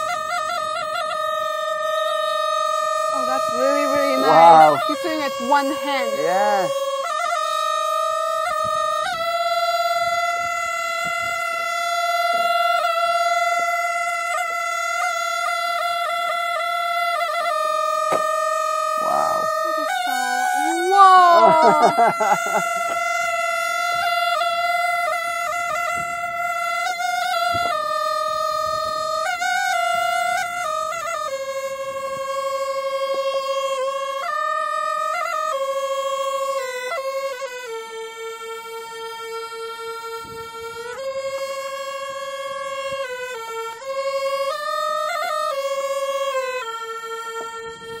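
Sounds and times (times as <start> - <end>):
wind instrument melody: 0.0 - 48.0.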